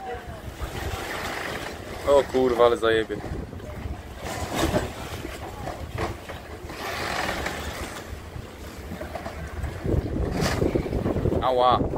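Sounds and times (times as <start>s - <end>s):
water surging against pier: 0.0s - 11.9s
wind buffeting microphone: 0.0s - 11.9s.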